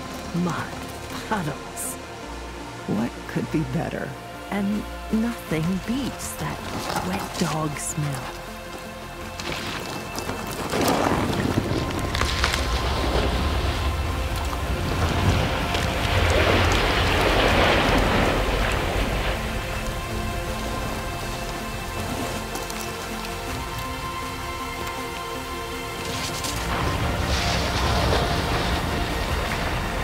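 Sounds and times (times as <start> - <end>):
bike tyres splashing through mud: 0.0 - 1.2, 8.8 - 30.0
background music: 0.0 - 30.0.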